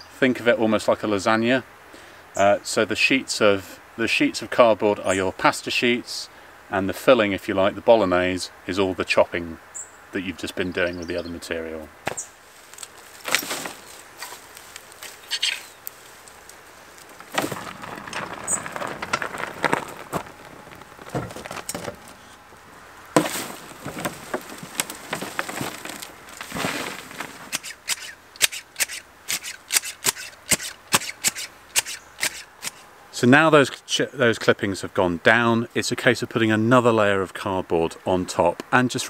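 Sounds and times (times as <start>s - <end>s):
clippings rustling and crunching: 11.4s - 32.9s
garden fork scraping: 12.1s - 22.4s, 23.2s - 32.9s.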